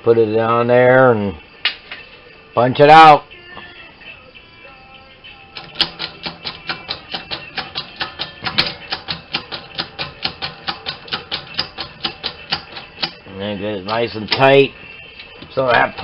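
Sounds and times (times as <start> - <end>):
hammer tapping metal punch: 5.6 - 13.2.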